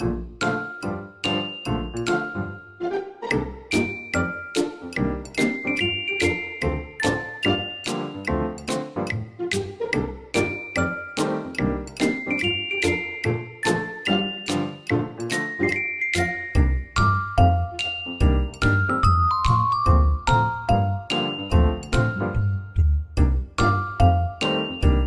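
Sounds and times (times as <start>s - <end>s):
light cheerful background music: 0.0s - 25.0s.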